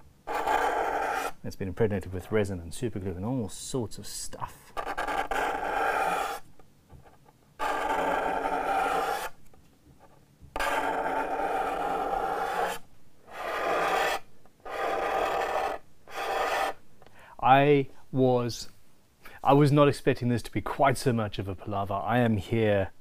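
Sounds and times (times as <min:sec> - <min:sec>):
hand scraper rasping on wood finish: 0:00.0 - 0:01.4, 0:04.7 - 0:06.4, 0:07.6 - 0:09.4, 0:10.6 - 0:16.8.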